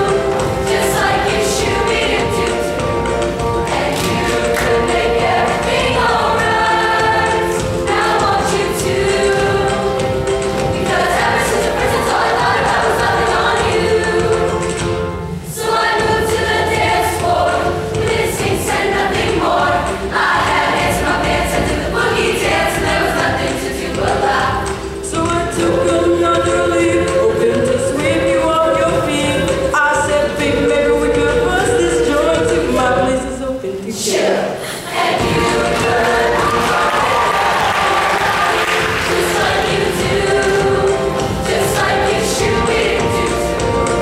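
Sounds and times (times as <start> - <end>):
choir singing in parts: 0.0 - 44.0.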